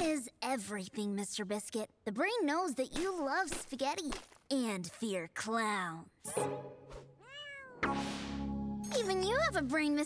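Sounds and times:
cartoon cat meow: 7.2 - 7.8.

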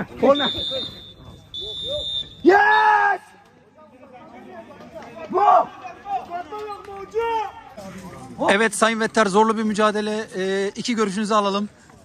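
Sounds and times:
referee's whistle blasts: 0.2 - 3.0
man shouting: 1.9 - 3.3.

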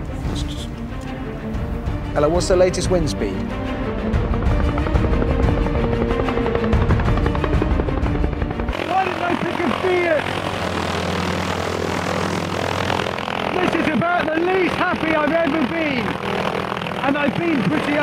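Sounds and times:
music: 0.0 - 10.6, 13.2 - 18.0
helicopter rotor chopping: 0.0 - 18.0.

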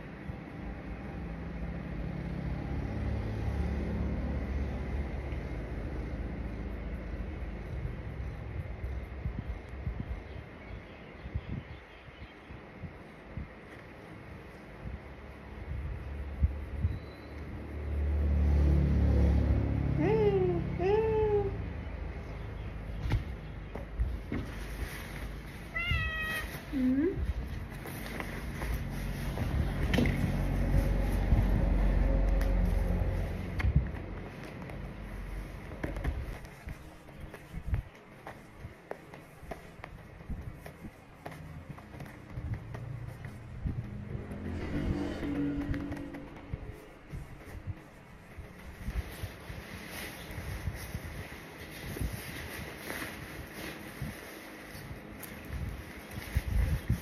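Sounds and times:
fabric rustling: 24.1 - 57.0
cat meowing: 25.7 - 26.7
low uneven bumps and rumble: 27.1 - 49.3.

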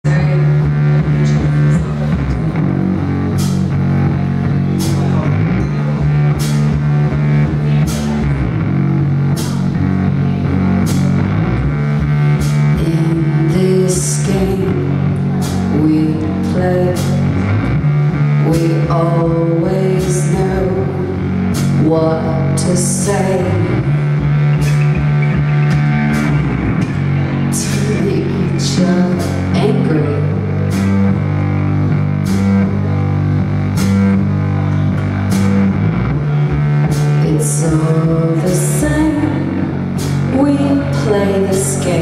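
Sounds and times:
live rock band playing: 0.0 - 42.0.

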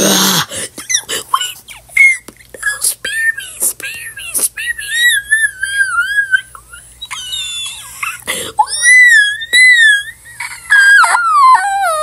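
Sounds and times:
girl screaming and squealing: 7.1 - 12.0.

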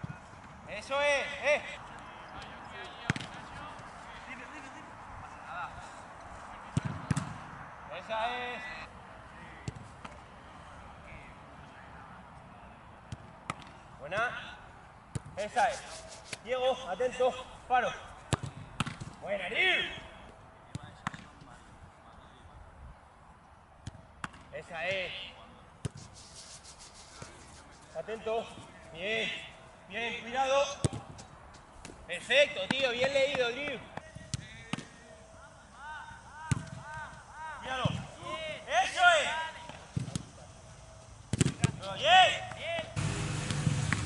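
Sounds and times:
ball bouncing on turf: 2.8 - 3.7, 6.7 - 7.4, 9.6 - 10.2, 18.3 - 19.2, 30.8 - 32.0, 36.5 - 37.0, 39.7 - 40.3, 41.3 - 42.8
football being kicked: 3.0 - 3.4, 6.7 - 7.4, 18.3 - 19.2, 30.8 - 31.1, 41.3 - 41.9
football kick: 41.3 - 41.9.

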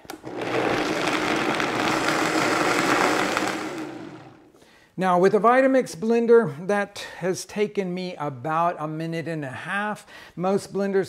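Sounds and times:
blender running: 0.0 - 4.5.

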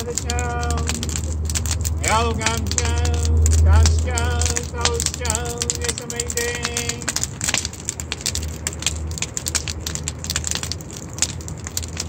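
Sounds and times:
bonfire crackling and popping: 0.0 - 12.0
low fire rumble: 0.0 - 12.0.

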